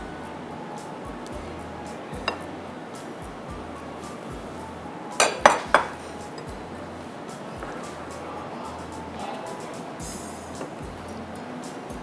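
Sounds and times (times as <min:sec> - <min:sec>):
soft background music: 0:00.0 - 0:12.0
ladle clinking against glass bowl: 0:05.2 - 0:06.6.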